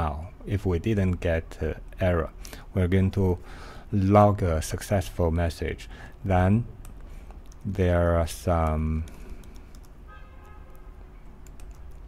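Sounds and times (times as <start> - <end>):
steady low hum: 0.0 - 10.1
keyboard keystroke clicks: 11.4 - 12.0.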